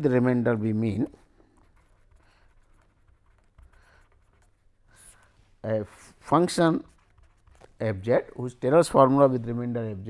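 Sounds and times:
pen scratching on paper: 1.0s - 5.3s, 5.9s - 7.8s.

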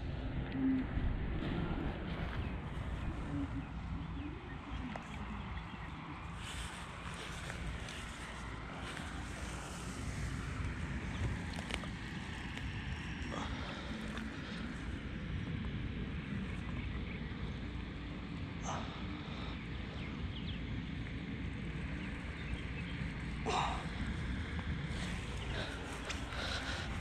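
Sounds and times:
wind rumble on microphone: 0.0s - 27.0s.

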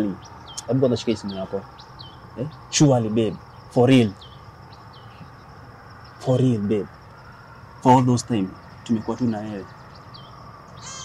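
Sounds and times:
insect chirps: 0.0s - 11.0s
insect trill: 0.0s - 11.0s.

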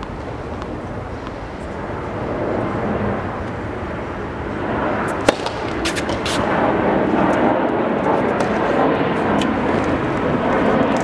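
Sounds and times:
airplane flying over: 0.0s - 11.0s
tennis ball bouncing on court: 5.2s - 6.5s, 8.2s - 8.8s.

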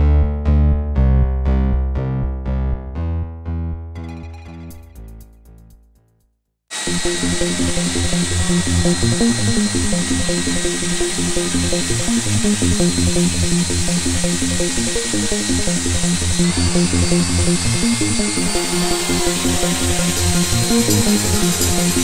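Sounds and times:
electronic dance music: 6.7s - 22.0s
steady high whine: 6.7s - 22.0s.

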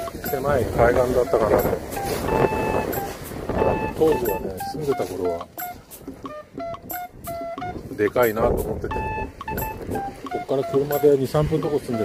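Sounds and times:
short steady beeps: 0.0s - 7.7s, 8.9s - 12.0s
waves washing onto beach: 0.0s - 12.0s
wind buffeting microphone: 0.0s - 12.0s.

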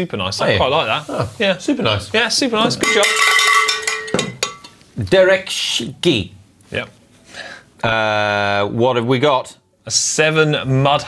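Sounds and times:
cowbell clanging: 2.8s - 4.8s.

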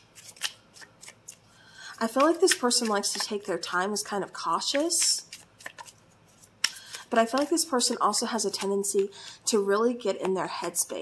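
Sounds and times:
cards being shuffled: 0.0s - 3.6s, 4.6s - 9.1s.

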